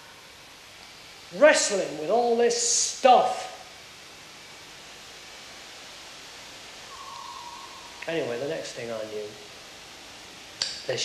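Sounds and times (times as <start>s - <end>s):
faint steady tone: 0.0s - 11.0s
steady hiss: 0.0s - 11.0s.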